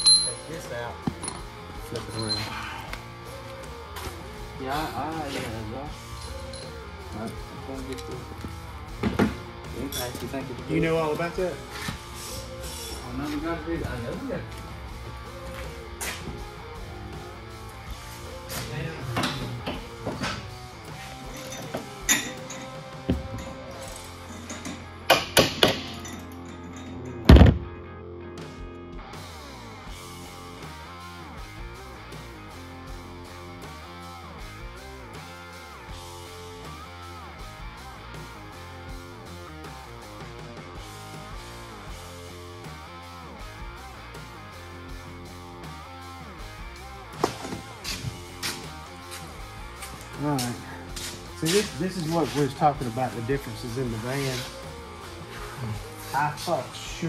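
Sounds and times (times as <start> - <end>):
guitar music with steady beat: 2.8 - 25.4, 26.3 - 57.0
metal clanks and knocks: 21.4 - 27.8.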